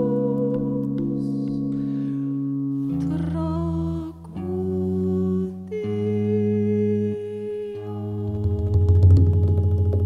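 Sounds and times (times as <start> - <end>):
sustained electric guitar tones: 0.0 - 10.0.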